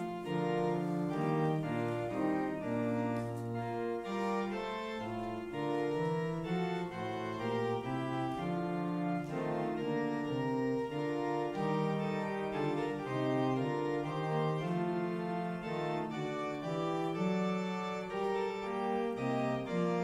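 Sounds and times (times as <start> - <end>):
organ playing a hymn: 0.0 - 20.0.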